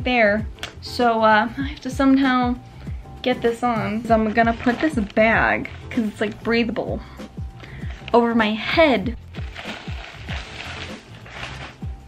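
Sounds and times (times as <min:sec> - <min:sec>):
background music: 0:00.0 - 0:12.0
plastic bag rustling: 0:04.0 - 0:06.5, 0:07.6 - 0:08.2, 0:09.1 - 0:12.0.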